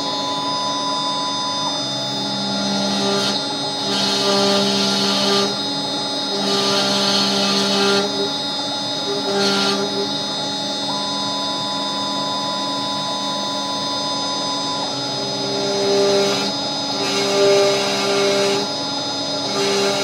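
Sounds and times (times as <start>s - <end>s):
cnc router whine: 0.0s - 20.0s
end mill cutting noise: 9.0s - 10.3s.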